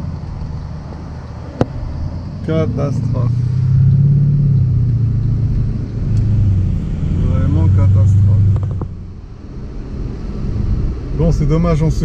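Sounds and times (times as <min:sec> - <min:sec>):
car engine and road noise in cabin: 0:00.0 - 0:12.0.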